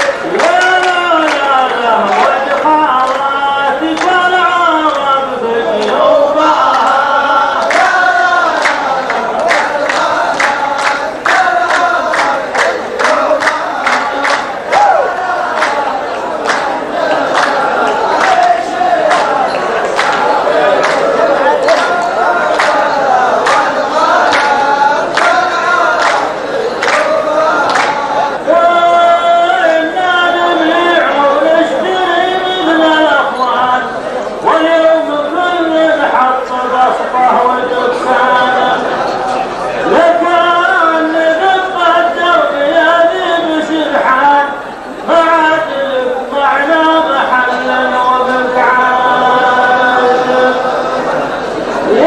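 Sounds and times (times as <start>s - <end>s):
loud hand clap: 0.0s - 28.7s
man singing into a microphone: 0.0s - 52.0s
men chanting in unison: 0.0s - 52.0s.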